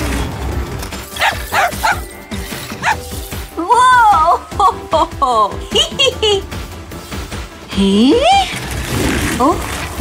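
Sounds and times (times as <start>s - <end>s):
cartoon dog yipping: 1.2s - 2.1s, 2.8s - 3.0s.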